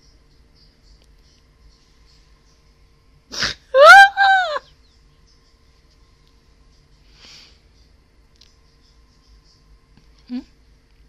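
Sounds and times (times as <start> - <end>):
woman squealing: 3.4 - 4.6.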